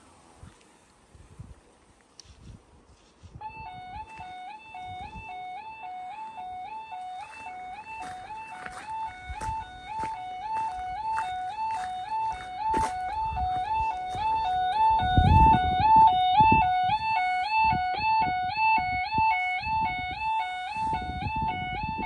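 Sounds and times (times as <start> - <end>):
electronic two-tone warning warble: 3.5 - 22.0.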